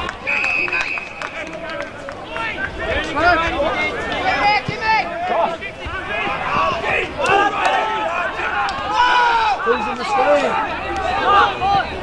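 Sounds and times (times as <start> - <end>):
men shouting: 2.4 - 11.9.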